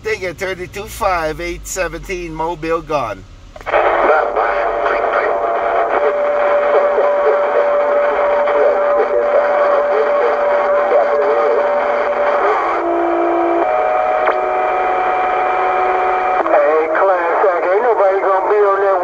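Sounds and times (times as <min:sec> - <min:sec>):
garbled radio voices: 0:00.0 - 0:12.9, 0:14.0 - 0:19.0
radio whistling tones: 0:03.6 - 0:18.1.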